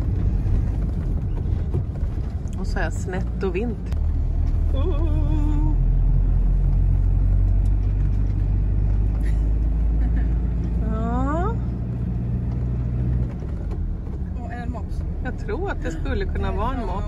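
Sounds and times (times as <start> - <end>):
vehicle engine and road noise: 0.0 - 17.0.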